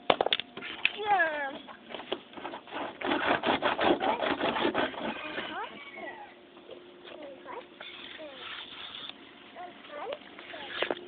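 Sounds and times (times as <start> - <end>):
pig squealing: 4.8 - 6.3.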